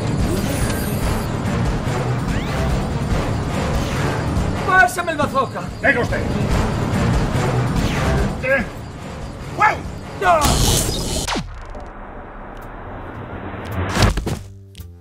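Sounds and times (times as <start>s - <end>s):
music: 0.0s - 15.0s.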